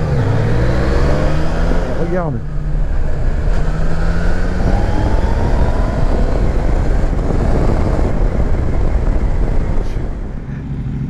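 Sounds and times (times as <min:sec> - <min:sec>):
motorcycle engine running: 0:00.0 - 0:11.0
wind rush on microphone: 0:00.0 - 0:11.0.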